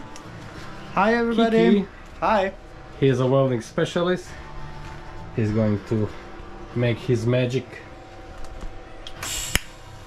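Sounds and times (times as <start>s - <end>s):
welder start hiss: 9.2s - 9.8s.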